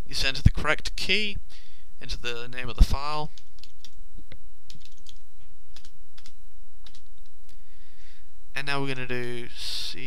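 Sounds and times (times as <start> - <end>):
steady low hum: 0.0 - 10.0
computer keyboard typing: 3.3 - 4.0, 4.7 - 7.3.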